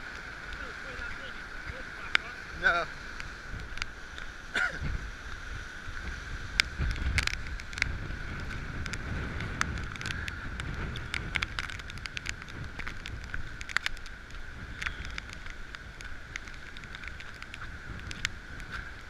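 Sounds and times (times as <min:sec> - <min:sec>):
heavy rain tapping camera: 0:00.4 - 0:05.4, 0:06.0 - 0:19.0
wind buffeting microphone: 0:00.6 - 0:19.0.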